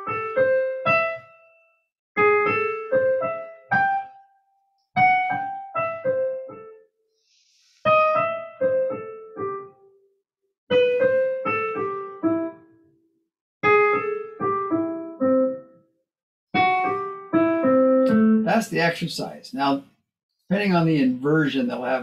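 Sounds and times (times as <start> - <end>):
digital piano phrases: 0.0 - 6.9, 7.9 - 10.0, 10.7 - 12.9, 13.6 - 15.9, 16.5 - 19.8.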